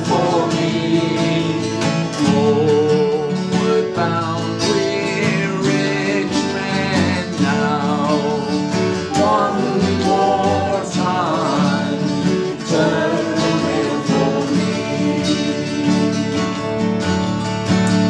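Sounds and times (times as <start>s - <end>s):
acoustic guitar accompaniment: 0.0s - 18.0s.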